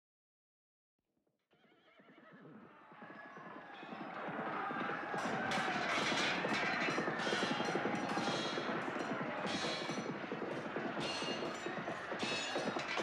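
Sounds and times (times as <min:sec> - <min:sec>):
horses galloping: 0:02.2 - 0:13.0.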